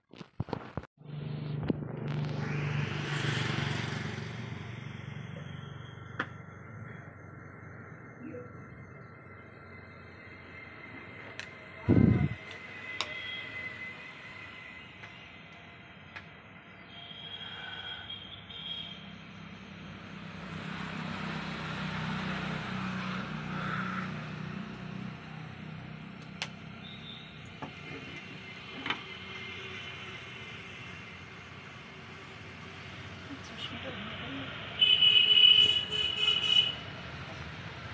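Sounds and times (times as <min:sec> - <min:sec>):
passing vehicle rumble: 0:01.0 - 0:15.3, 0:19.0 - 0:34.7.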